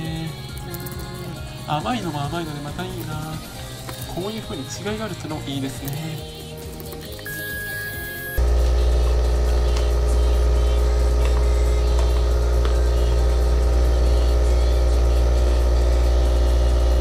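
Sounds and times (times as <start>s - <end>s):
coffee machine humming: 7.2s - 17.0s.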